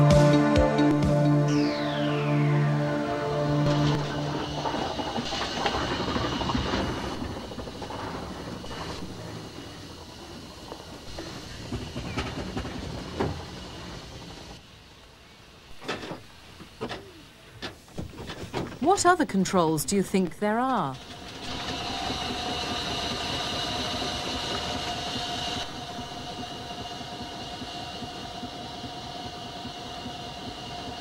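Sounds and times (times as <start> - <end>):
electronic music sting: 0.0 - 4.9
steam traction engine running: 0.0 - 31.0
mechanical clanks and knocks: 15.8 - 19.0.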